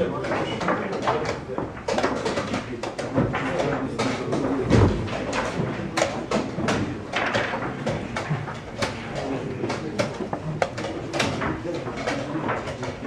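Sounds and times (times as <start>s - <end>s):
chess pieces knocking on board: 0.0s - 13.0s.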